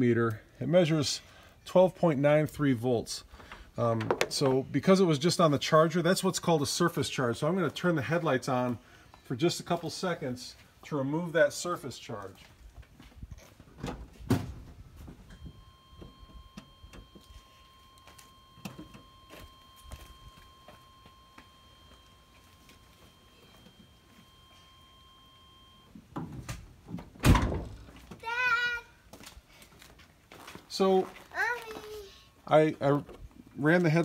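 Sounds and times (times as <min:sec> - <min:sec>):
electronic warning tone: 0:15.3 - 0:26.0
loud thump: 0:27.2 - 0:27.8.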